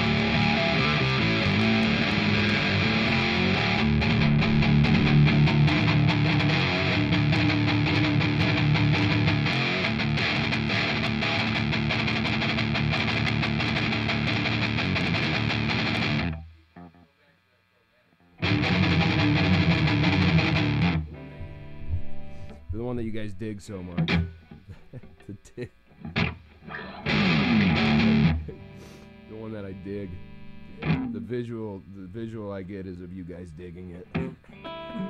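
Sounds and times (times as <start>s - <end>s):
electric guitar riff: 0.0s - 17.2s, 18.2s - 31.8s, 33.3s - 35.0s.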